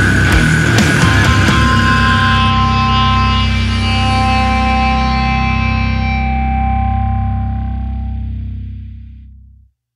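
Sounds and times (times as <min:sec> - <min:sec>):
distorted electric guitar chord ringing: 0:00.0 - 0:09.5.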